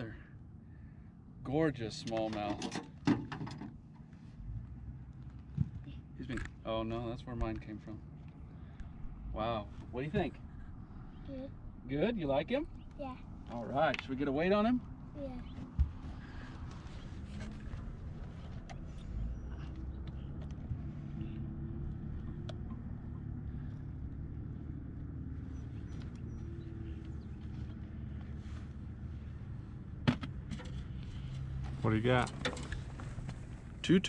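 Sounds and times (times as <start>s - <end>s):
low rumble: 8.4s - 12.0s.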